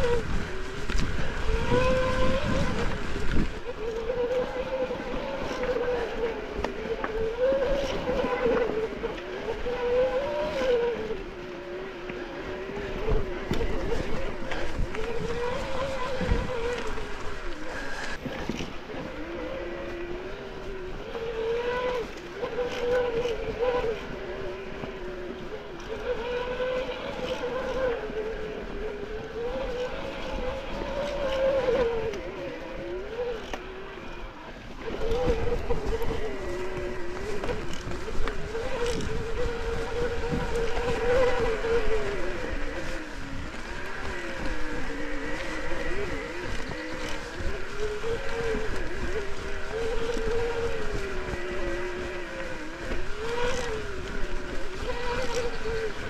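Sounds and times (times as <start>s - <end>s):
electric bike motor whining: 0.0s - 56.0s.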